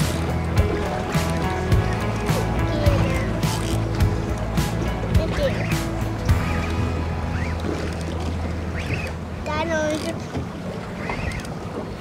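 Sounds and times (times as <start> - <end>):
outboard boat engine idling: 0.0 - 12.0.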